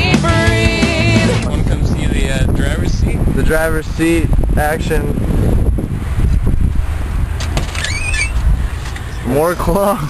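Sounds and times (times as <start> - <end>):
high wavering squeak: 7.7 - 8.4.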